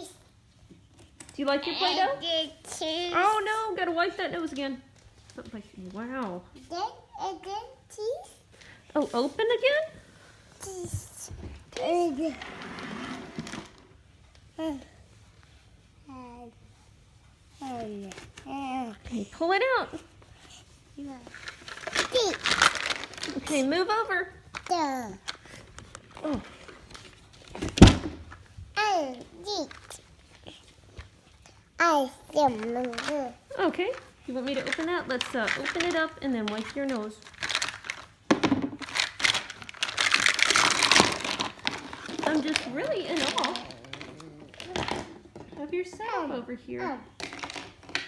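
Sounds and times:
plastic packaging crinkling: 21.3s - 23.8s, 32.6s - 45.1s, 47.2s - 48.0s.

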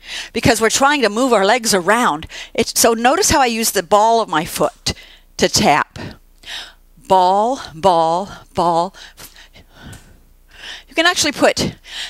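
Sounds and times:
woman breathing: 0.0s - 0.4s, 2.3s - 2.6s, 4.9s - 5.4s, 6.0s - 6.8s, 7.6s - 11.0s, 11.6s - 12.0s
woman speaking: 0.4s - 6.2s, 7.0s - 9.4s, 10.9s - 11.8s.

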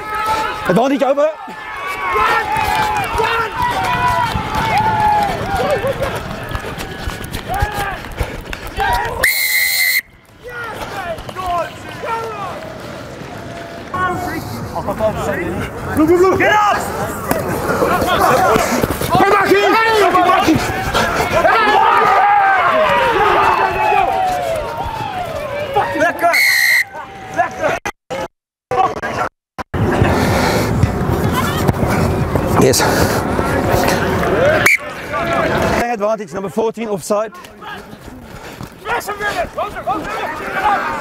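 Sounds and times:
people shouting: 0.0s - 0.8s, 1.4s - 14.1s, 16.2s - 28.3s, 38.8s - 41.0s
referee's whistle blast: 9.2s - 10.1s, 26.3s - 26.9s.

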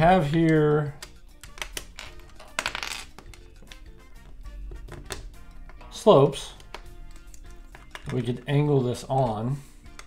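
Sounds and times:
soft background music: 0.0s - 10.0s
plastic bricks clicking and clattering: 1.5s - 3.8s, 6.6s - 9.3s.

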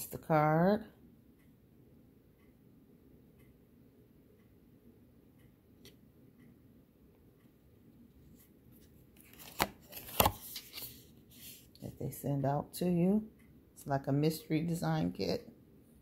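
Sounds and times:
cards rustling: 8.8s - 11.7s
cards clacking on wooden board: 9.3s - 10.9s.

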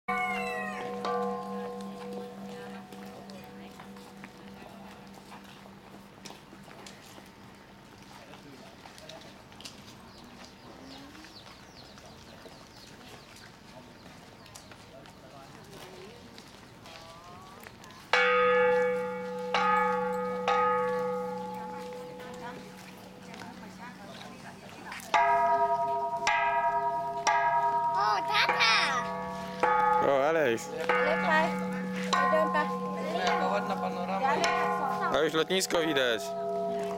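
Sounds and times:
metal temple bells ringing: 0.1s - 6.2s, 18.2s - 36.9s
metal bell ringing: 25.2s - 36.9s.

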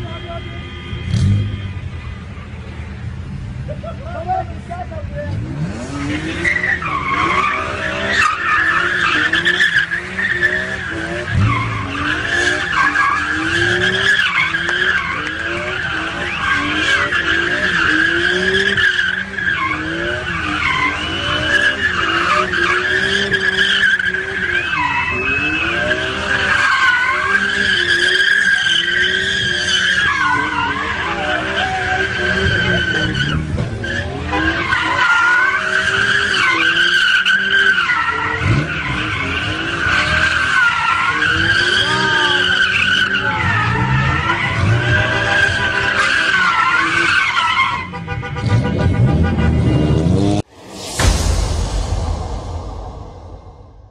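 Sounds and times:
car engine revving high: 5.3s - 28.2s.

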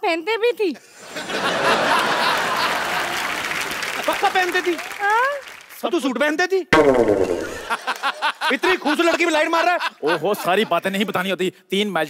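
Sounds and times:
audience laughing: 1.0s - 3.4s, 7.0s - 10.7s
audience applauding: 1.9s - 5.8s.

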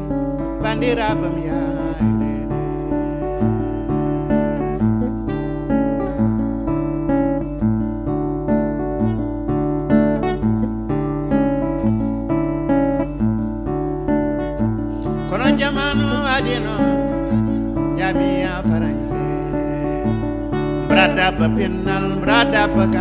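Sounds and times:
man singing with vibrato: 0.0s - 5.4s, 15.0s - 23.0s
fingerpicked acoustic guitar: 0.0s - 23.0s.

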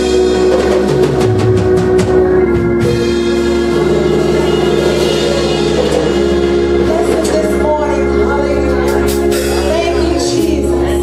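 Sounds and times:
bass: 0.0s - 11.0s
drum kit: 0.0s - 11.0s
keyboard chords: 0.0s - 11.0s.

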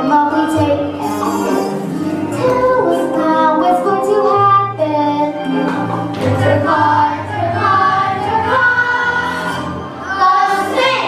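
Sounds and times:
children singing: 0.0s - 11.0s
musical accompaniment: 0.0s - 11.0s.

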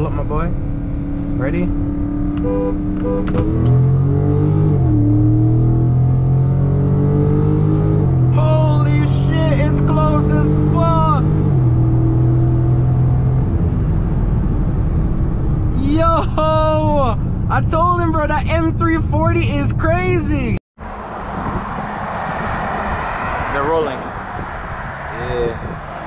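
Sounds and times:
car engine accelerating: 0.0s - 26.0s
road noise: 0.0s - 26.0s.

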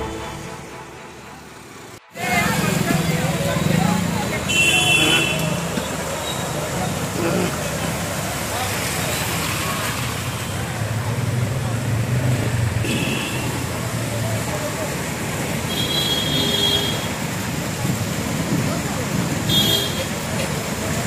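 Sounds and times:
vehicle engines running: 0.0s - 15.7s, 17.0s - 21.0s
water splashing under tyres: 3.2s - 21.0s.

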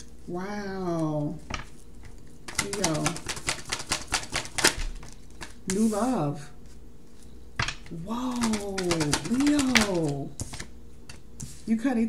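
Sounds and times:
cards being shuffled: 1.5s - 5.9s, 6.7s - 11.7s.

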